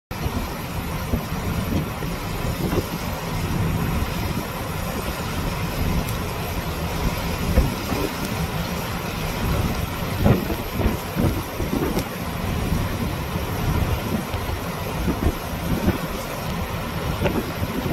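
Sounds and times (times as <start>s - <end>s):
heavy surf: 0.1s - 17.9s
wind buffeting microphone: 0.1s - 17.9s.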